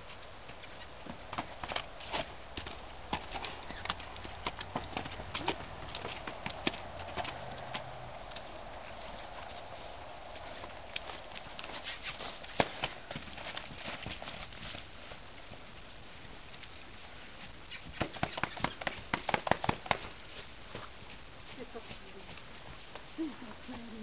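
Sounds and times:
hooves trotting on muddy ground: 0:00.0 - 0:24.0.

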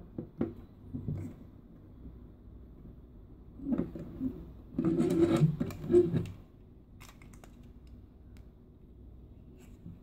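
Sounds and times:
plastic toy scraping and rubbing: 0:03.6 - 0:06.4.

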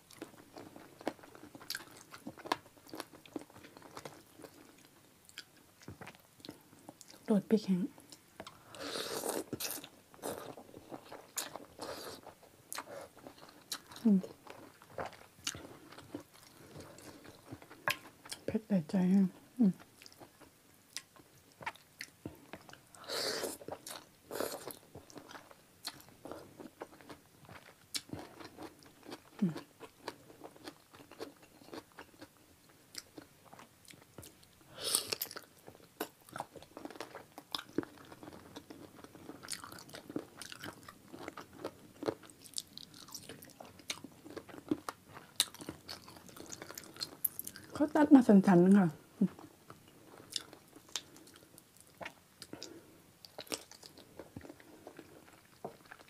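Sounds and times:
close-up wet chewing: 0:00.0 - 0:07.3, 0:08.0 - 0:18.5, 0:19.4 - 0:48.0, 0:48.8 - 0:56.0.

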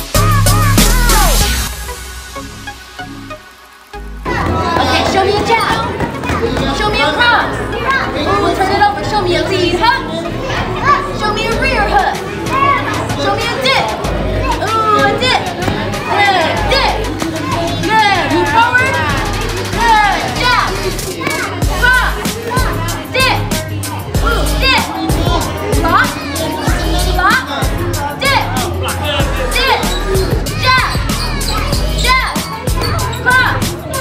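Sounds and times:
children chattering and calling out: 0:00.0 - 0:01.7, 0:04.1 - 0:34.0
music: 0:00.0 - 0:34.0.

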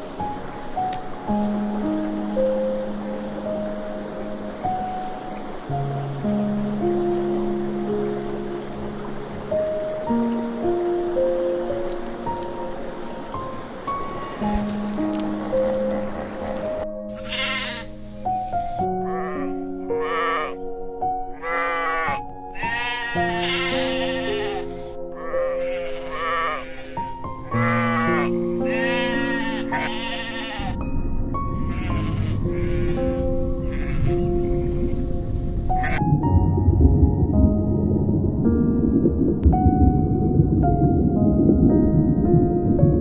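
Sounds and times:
gentle background music: 0:00.0 - 0:43.0
animal bleating: 0:17.2 - 0:17.9, 0:19.0 - 0:20.6, 0:21.3 - 0:27.0, 0:27.6 - 0:30.8, 0:31.7 - 0:33.0, 0:33.6 - 0:34.0
steady low noise: 0:35.3 - 0:43.0.

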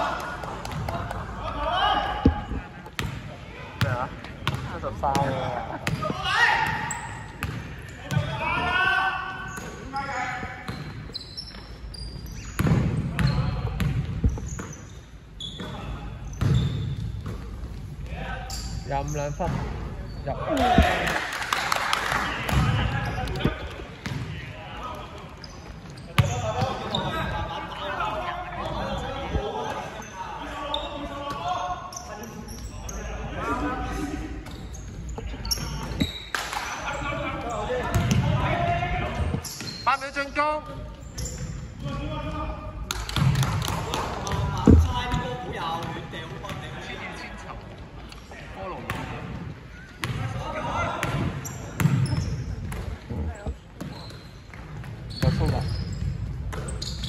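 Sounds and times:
players shouting and chattering: 0:00.0 - 0:57.0
basketball bouncing on wooden court: 0:03.8 - 0:06.0, 0:07.4 - 0:08.3, 0:12.6 - 0:14.7, 0:16.3 - 0:17.4, 0:37.9 - 0:38.3, 0:51.0 - 0:56.9.

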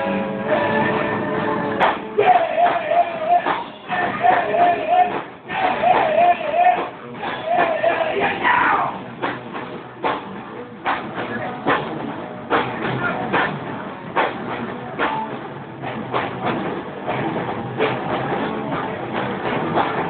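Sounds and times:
drum kit beat: 0:00.0 - 0:20.0
electric guitars: 0:00.0 - 0:20.0.

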